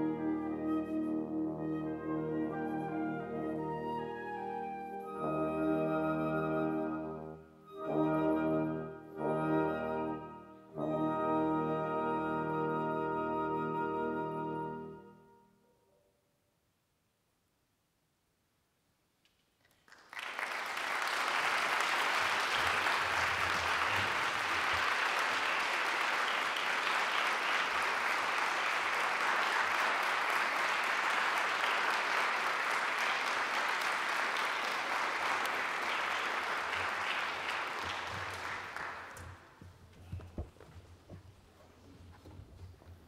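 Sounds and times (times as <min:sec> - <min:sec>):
audience applauding: 0:19.6 - 0:39.6.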